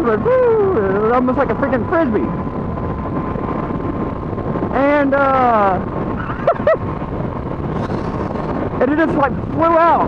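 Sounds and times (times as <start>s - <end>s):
motorcycle running and road noise: 0.0s - 10.0s
wind rushing over microphone: 0.0s - 10.0s.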